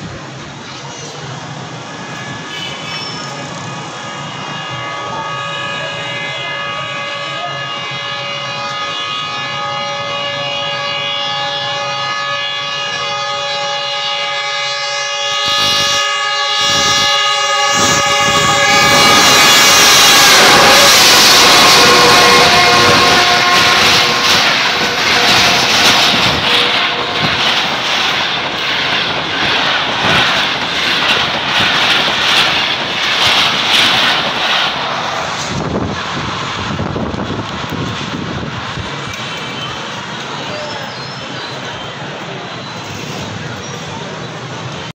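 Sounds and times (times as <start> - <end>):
train passing with loud rush: 0.0 - 44.9
locomotive horn: 1.9 - 36.7
coaches clattering over rail joints: 20.2 - 35.9.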